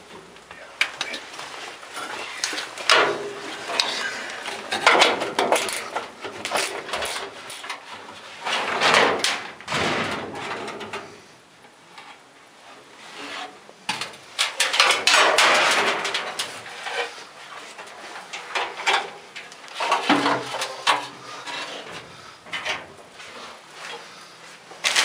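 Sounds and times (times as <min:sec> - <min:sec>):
metal scraping and clanking: 0:01.9 - 0:11.2, 0:14.4 - 0:24.0.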